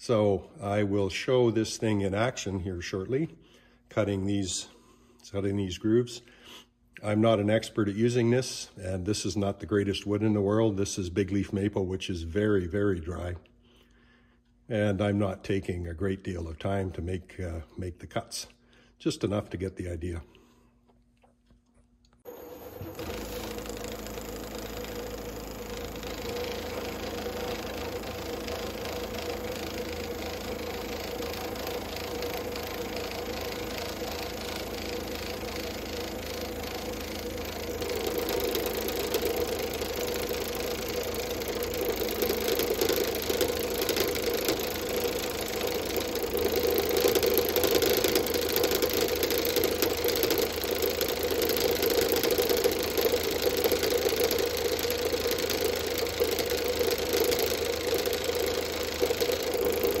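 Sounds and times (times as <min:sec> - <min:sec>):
vibrating cutter cutting wood: 0:22.3 - 1:00.0
wood lathe running: 0:22.3 - 1:00.0.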